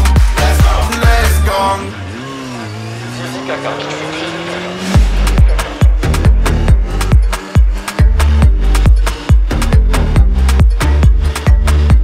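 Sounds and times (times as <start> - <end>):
heavy bass rap beat: 0.0 - 1.9, 4.5 - 12.0
engine note rising in pitch: 1.1 - 11.9.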